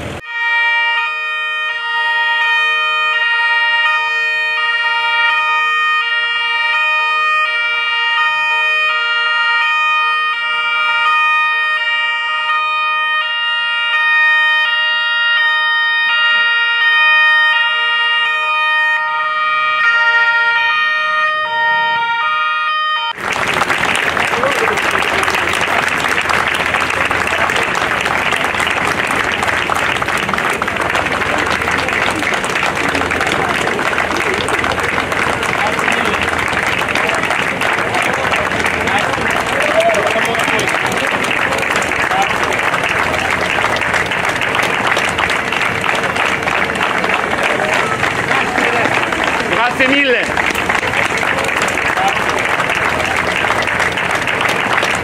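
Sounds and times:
two-tone police sirens: 0:00.1 - 0:55.0
loud applause: 0:23.1 - 0:55.0.

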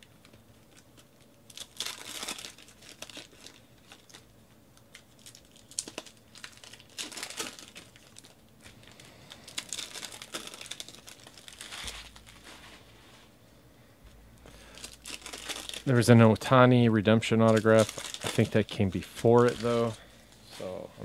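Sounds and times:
foil wrappers tearing and crinkling: 0:00.0 - 0:12.8, 0:14.5 - 0:16.5, 0:17.2 - 0:20.0.

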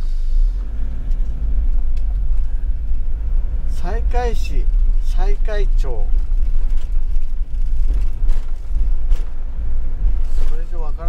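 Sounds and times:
van engine and road noise: 0:00.0 - 0:11.0.

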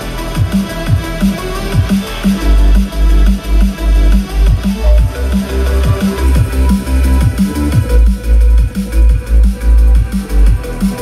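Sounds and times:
electronic dance music: 0:00.0 - 0:11.0
falling bass sweeps: 0:00.0 - 0:11.0.

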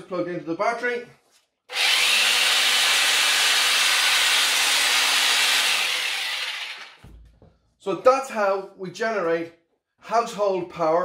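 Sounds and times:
hammer drill running: 0:01.7 - 0:07.0.

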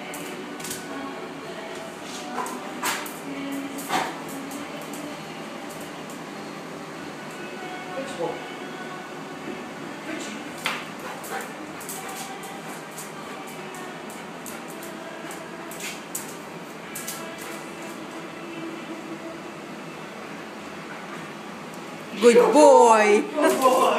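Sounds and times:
low background murmur: 0:00.0 - 0:23.9.

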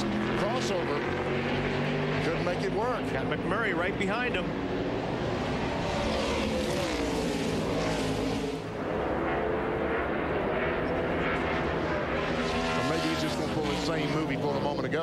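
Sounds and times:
race car engines: 0:00.0 - 0:15.0.

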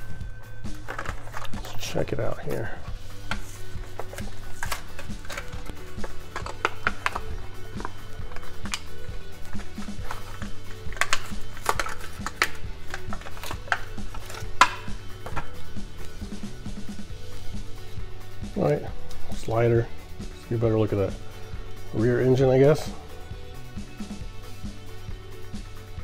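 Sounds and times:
background music: 0:00.0 - 0:26.0
plastic packaging clicks and crackles: 0:03.2 - 0:08.9, 0:09.5 - 0:15.5.

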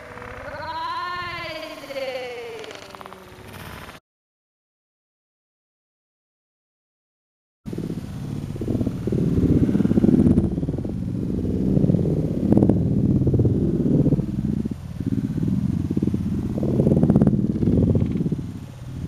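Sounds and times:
wind buffeting microphone: 0:07.7 - 0:19.0.

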